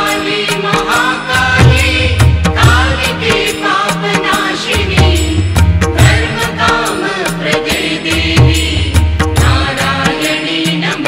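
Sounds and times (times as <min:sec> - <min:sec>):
steady percussion: 0:00.0 - 0:11.0.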